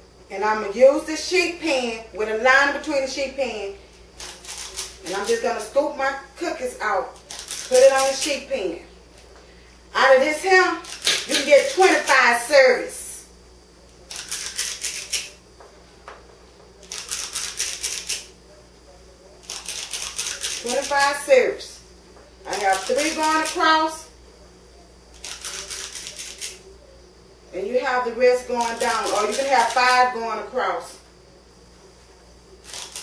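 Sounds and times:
cookie scoop scraping dough: 14.1s - 15.4s, 19.4s - 21.2s, 25.2s - 26.6s.

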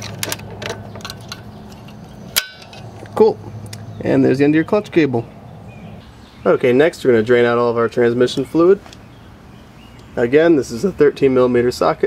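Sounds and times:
small metal parts clinking: 0.0s - 2.9s.

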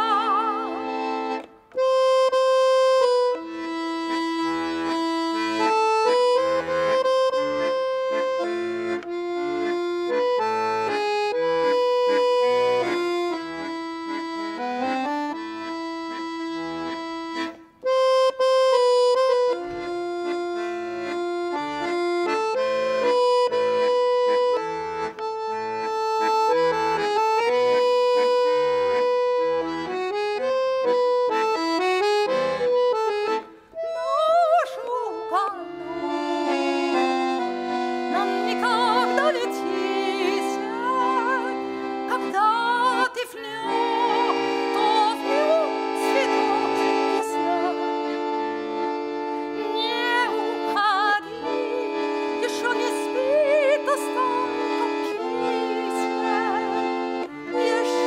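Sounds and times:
woman singing with vibrato: 0.0s - 1.1s, 33.9s - 37.0s, 38.1s - 47.9s, 49.6s - 58.0s
accordion playing slow melody: 0.0s - 58.0s.

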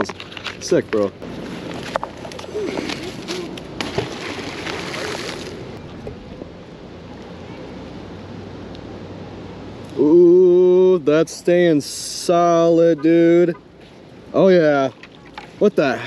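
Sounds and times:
water splashing and sloshing: 0.0s - 6.5s, 12.7s - 16.0s.

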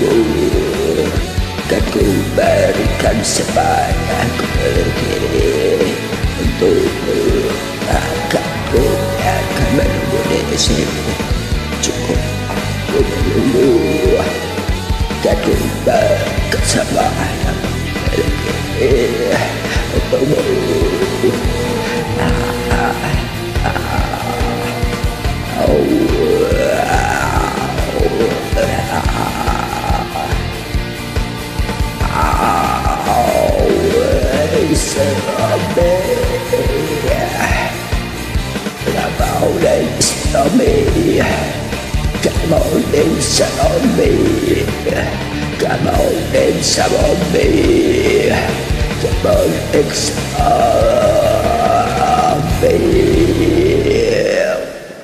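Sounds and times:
rock backing track: 0.0s - 54.8s.

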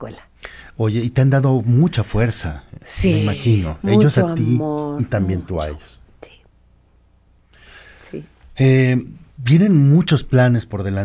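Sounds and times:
soft intake of breath: 0.4s - 0.8s, 7.4s - 8.2s
person saying a soft word: 2.9s - 6.4s
person talking: 2.9s - 6.4s.

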